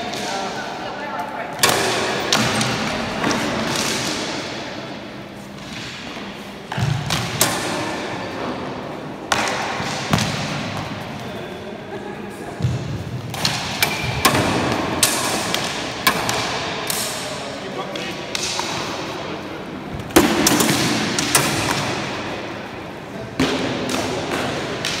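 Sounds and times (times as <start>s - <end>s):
training swords clashing: 1.6s - 4.6s, 13.3s - 17.5s, 20.1s - 22.7s.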